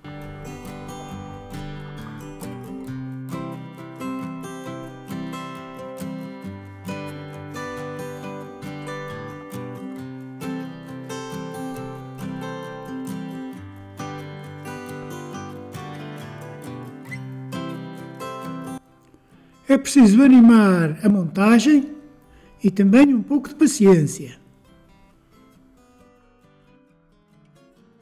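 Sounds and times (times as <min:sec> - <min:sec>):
acoustic guitar music: 0:00.0 - 0:28.0.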